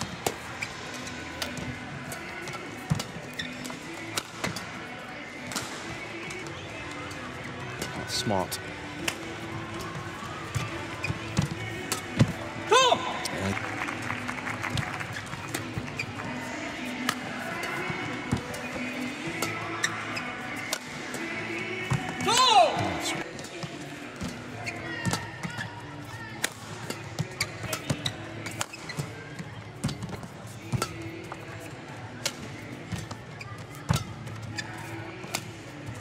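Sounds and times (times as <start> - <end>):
shoes squeaking on court: 0.0 - 36.0
racket striking shuttlecock: 4.1 - 4.6, 17.0 - 19.6, 20.6 - 21.2, 26.4 - 28.9.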